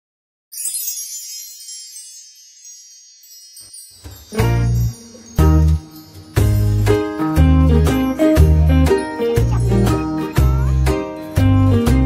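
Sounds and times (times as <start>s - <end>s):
shimmering wind chime effect: 0.5s - 11.9s.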